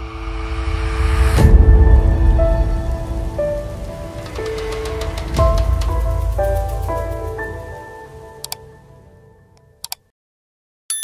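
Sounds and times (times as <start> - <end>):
deep rumble: 0.0 - 7.7.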